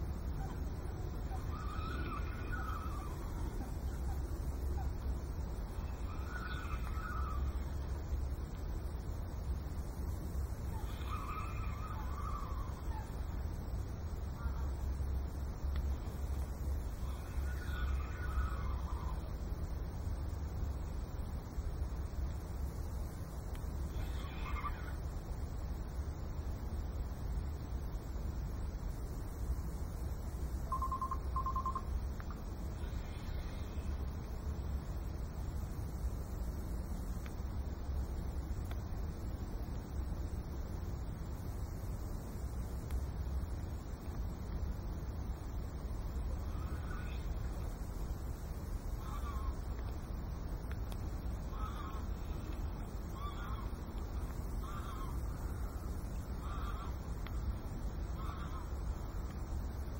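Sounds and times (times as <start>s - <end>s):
wind rumbling on microphone: 0.0s - 59.9s
bird calling: 0.1s - 7.8s, 10.6s - 13.4s, 15.8s - 19.3s, 23.9s - 25.0s, 30.7s - 34.0s, 46.4s - 47.6s, 48.9s - 49.8s, 51.4s - 57.5s, 58.1s - 59.1s
faint clicks: 15.6s - 16.7s, 23.2s - 24.2s, 30.7s - 34.4s, 36.9s - 40.0s, 42.7s - 44.7s, 48.9s - 59.7s.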